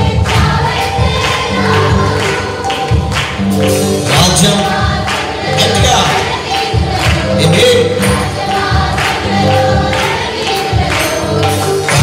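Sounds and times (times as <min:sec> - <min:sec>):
drums: 0:00.0 - 0:12.0
group singing worship song: 0:00.0 - 0:12.0
keyboard: 0:00.0 - 0:12.0.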